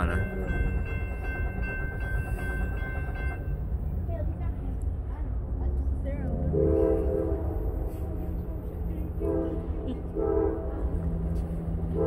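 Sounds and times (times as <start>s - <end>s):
distant diesel locomotives rumbling: 0.0s - 12.0s
locomotive horn blowing: 6.5s - 8.1s, 9.2s - 11.0s.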